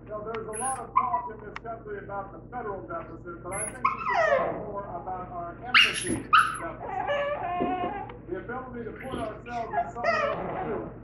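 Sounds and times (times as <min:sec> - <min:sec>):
small dog yipping: 0:00.6 - 0:01.3, 0:03.6 - 0:04.4, 0:05.8 - 0:08.1, 0:09.7 - 0:10.4
dog whimpering: 0:00.6 - 0:01.4, 0:03.6 - 0:04.7, 0:05.8 - 0:08.2, 0:09.1 - 0:10.9.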